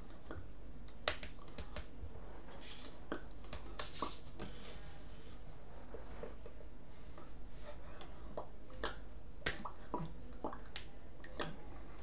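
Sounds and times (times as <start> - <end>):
hand clicks and slaps: 0.3 - 1.9, 2.8 - 4.1, 8.8 - 9.7.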